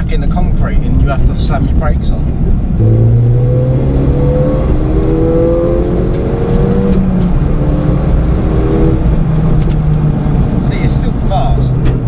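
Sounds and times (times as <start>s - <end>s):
low road rumble: 0.0s - 12.0s
car engine accelerating: 0.8s - 12.0s.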